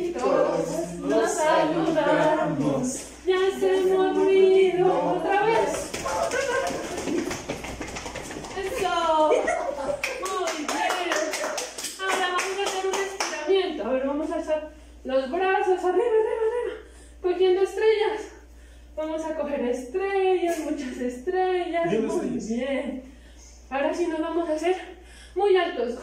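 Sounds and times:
group singing unaccompanied: 0:00.0 - 0:07.1
rapid hand clapping: 0:05.5 - 0:09.2, 0:10.0 - 0:13.4.

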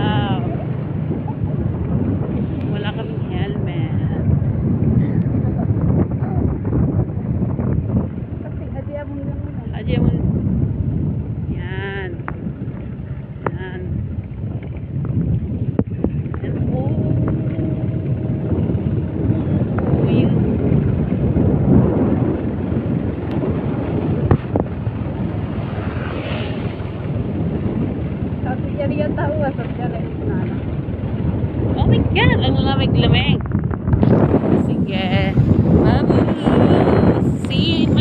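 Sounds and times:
wind rumbling on microphone: 0:00.0 - 0:38.0
distant voices: 0:24.6 - 0:38.0.

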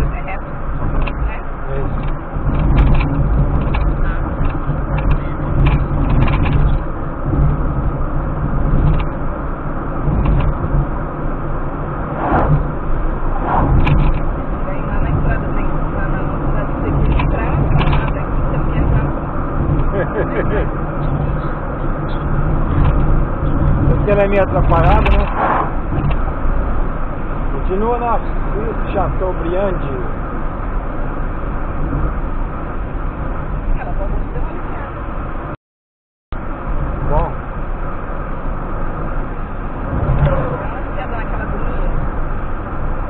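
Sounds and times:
car road and engine noise: 0:00.0 - 0:35.6, 0:36.3 - 0:43.0
oncoming vehicle passing: 0:11.6 - 0:16.5, 0:24.8 - 0:27.5.

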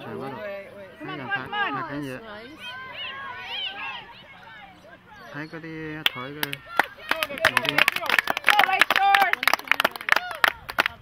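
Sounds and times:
voices calling out: 0:00.0 - 0:11.0
spectators clapping: 0:06.0 - 0:11.0.

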